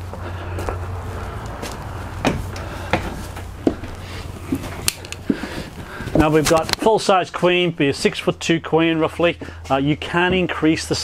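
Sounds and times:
footsteps: 0:00.0 - 0:07.2, 0:08.0 - 0:11.0
steady low rumble: 0:00.0 - 0:11.0.

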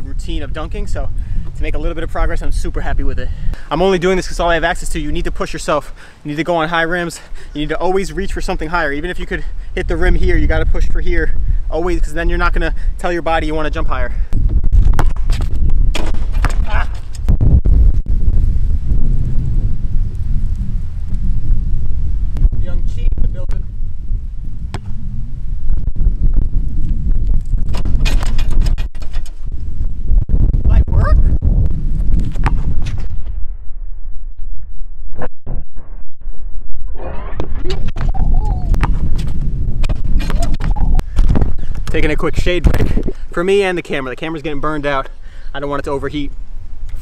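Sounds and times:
wind rumbling on microphone: 0:00.0 - 0:47.0
basketball bouncing on asphalt: 0:14.4 - 0:17.1, 0:24.7 - 0:25.0, 0:31.9 - 0:32.8, 0:38.8 - 0:41.9.

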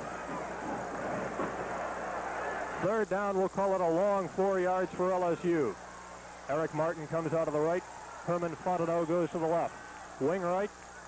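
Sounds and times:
stadium crowd murmur: 0:00.0 - 0:11.0.

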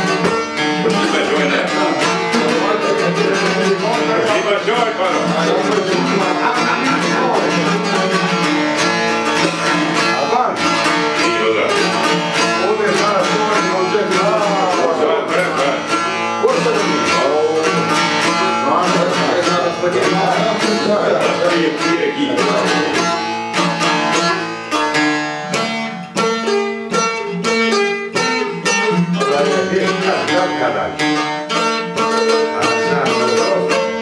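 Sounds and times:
plucked lutes playing folk tune: 0:00.0 - 0:34.0.

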